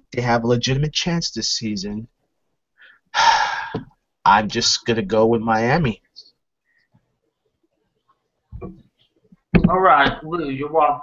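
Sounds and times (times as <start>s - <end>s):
man's sharp intake of breath: 2.8s - 3.9s.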